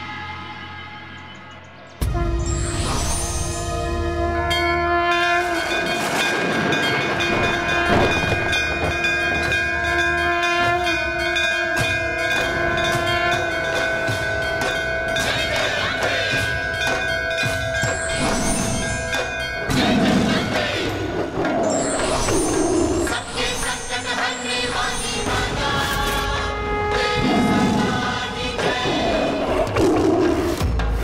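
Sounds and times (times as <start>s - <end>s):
long held orchestral notes: 2.0s - 19.8s, 24.3s - 28.6s.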